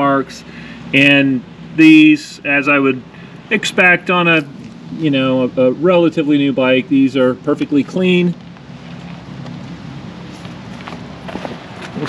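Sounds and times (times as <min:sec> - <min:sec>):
footsteps on gravel: 0:08.4 - 0:12.0.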